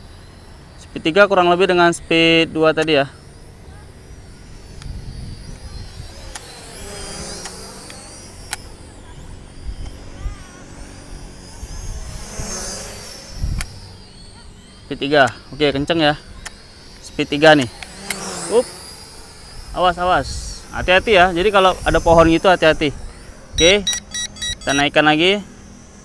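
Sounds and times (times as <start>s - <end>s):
drone propellers whining: 0.0s - 26.0s
wind rumble on microphone: 3.6s - 7.3s, 8.4s - 13.9s, 19.4s - 23.8s.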